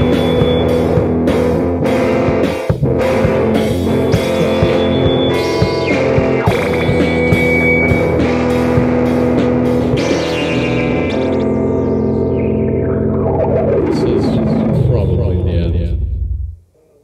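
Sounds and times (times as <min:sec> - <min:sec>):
drums and cymbals: 0:00.0 - 0:11.0
distorted electric guitar: 0:00.0 - 0:16.6.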